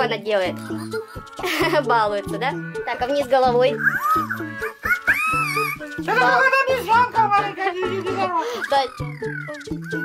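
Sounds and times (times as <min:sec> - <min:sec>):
background music: 0:00.0 - 0:10.0
squeaky electronic toy calls: 0:00.4 - 0:01.5, 0:02.2 - 0:06.4, 0:08.0 - 0:10.0.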